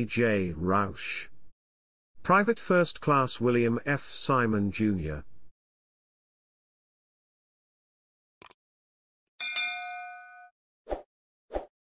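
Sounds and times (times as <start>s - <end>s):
notification bell ding: 9.4s - 10.5s.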